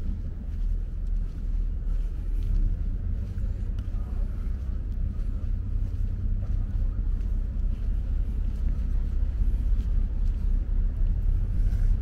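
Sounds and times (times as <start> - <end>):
faint voices: 0.0 - 12.0
wind buffeting microphone: 0.0 - 12.0.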